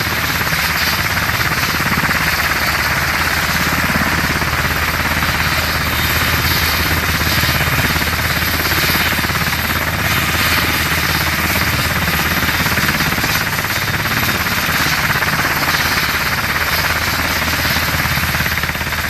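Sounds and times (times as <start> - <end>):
helicopter rotor beat: 0.0 - 19.0
turbine whine: 0.0 - 19.0.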